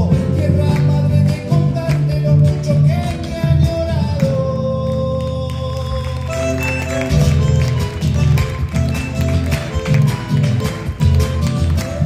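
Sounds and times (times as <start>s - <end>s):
folk ensemble playing: 6.1s - 12.0s.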